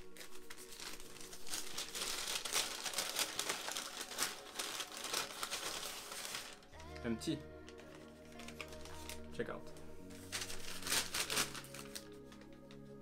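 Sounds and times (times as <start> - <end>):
paper bag crinkling: 0.0 - 13.0.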